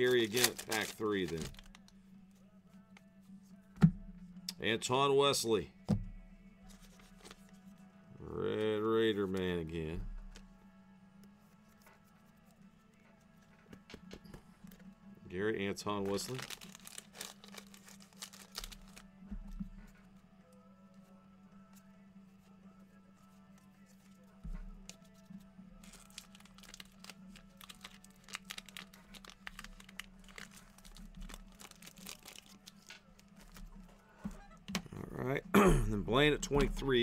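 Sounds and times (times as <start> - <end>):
foil wrappers crinkling and tearing: 0.0 - 1.9, 15.9 - 19.1, 25.8 - 33.7
cards being handled: 0.0 - 2.0, 6.7 - 7.8, 15.9 - 19.1, 24.8 - 34.0
faint background music: 0.0 - 37.0.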